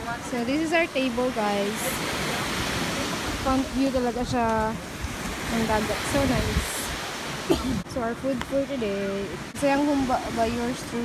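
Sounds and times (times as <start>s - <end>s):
surf breaking on beach: 0.0s - 11.0s
wind: 0.0s - 11.0s.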